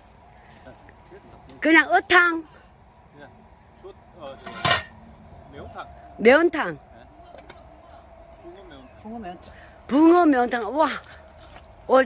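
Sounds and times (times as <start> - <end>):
metal scoop clanking on cauldron: 4.4 - 5.0.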